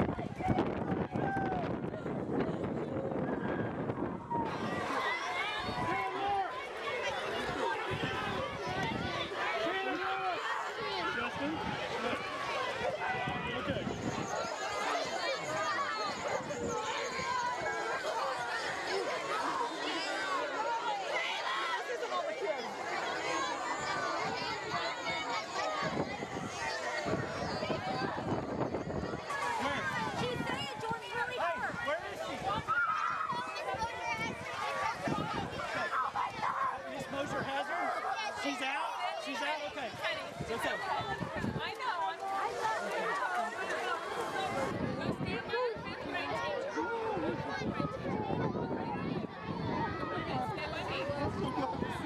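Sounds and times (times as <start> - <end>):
wind on microphone: 0.0 - 5.0, 10.8 - 17.9, 23.8 - 37.4, 40.0 - 41.8, 44.2 - 52.0
crowd talking and calling: 0.0 - 52.0
children crying: 4.3 - 39.3.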